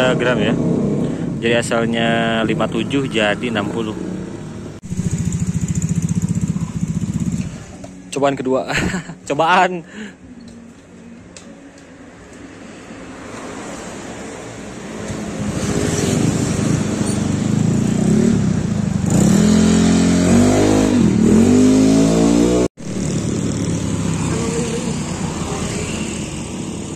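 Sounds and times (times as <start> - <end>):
scooter engine revving: 3.4 - 8.0, 14.6 - 26.9.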